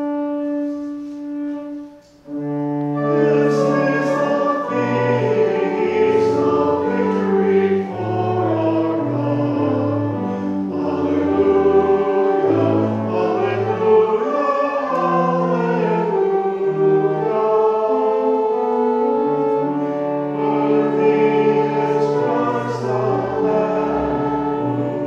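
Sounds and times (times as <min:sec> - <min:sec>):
church organ playing a hymn: 0:00.0 - 0:25.0.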